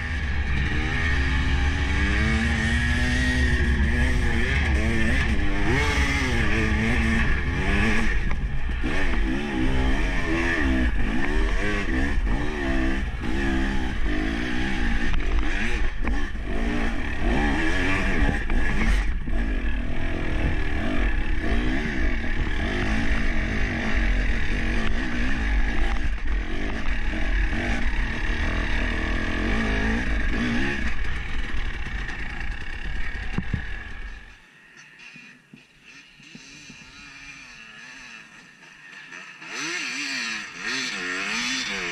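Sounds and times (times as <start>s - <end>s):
dirt bike engine revving: 0.0s - 41.9s.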